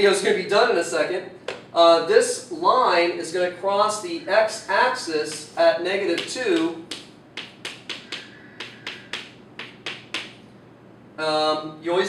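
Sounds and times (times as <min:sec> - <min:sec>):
chalk tapping on chalkboard: 0:05.2 - 0:10.4.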